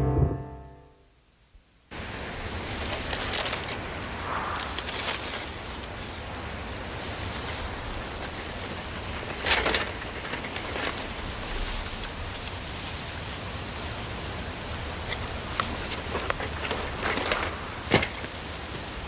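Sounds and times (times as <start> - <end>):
steady outdoor hiss: 0.0 - 19.0
bicycle tyres rolling: 1.9 - 19.0
rush of noise: 3.9 - 9.4.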